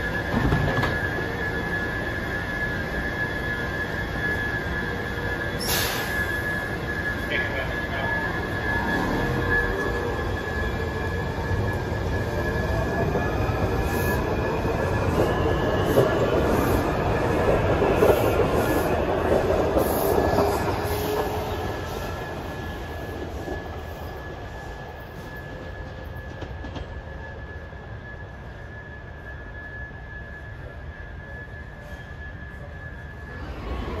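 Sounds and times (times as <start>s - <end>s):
steady high tone: 0.0s - 26.1s, 27.1s - 34.0s
train motor whine: 0.0s - 34.0s.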